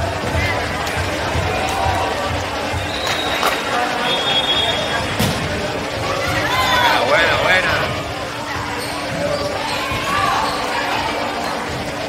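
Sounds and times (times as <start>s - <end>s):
voices of spectators and players: 0.0s - 12.0s.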